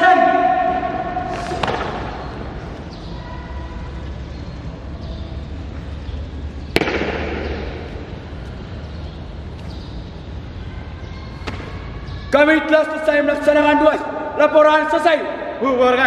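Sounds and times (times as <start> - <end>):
sharp impacts echoing in a hall: 0.0 - 16.0.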